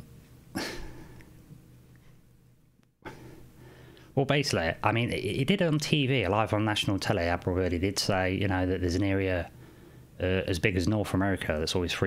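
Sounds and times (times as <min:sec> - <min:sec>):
faint steady hum: 0:00.0 - 0:12.0
breathy huff of air: 0:00.6 - 0:01.2, 0:03.0 - 0:04.1.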